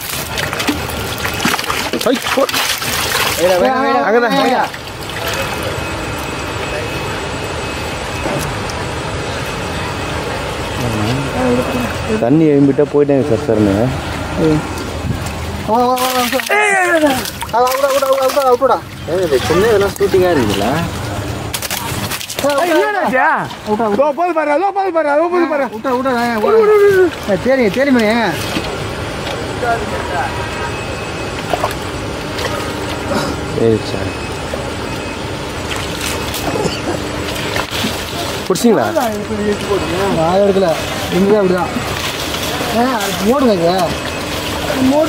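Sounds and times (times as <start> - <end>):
faint high whine: 0.0 - 45.0
steady engine-like drone: 0.0 - 45.0
water pump running: 0.0 - 45.0
man calling out: 15.7 - 19.9, 26.4 - 27.4.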